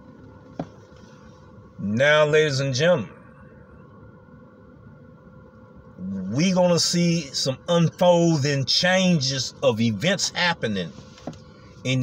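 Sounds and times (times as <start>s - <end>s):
car cabin low hum: 0.0s - 12.0s.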